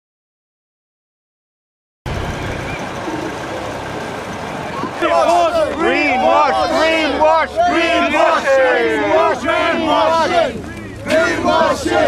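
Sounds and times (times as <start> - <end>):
low city rumble: 2.1 - 12.0
faint indistinct voices: 2.6 - 12.0.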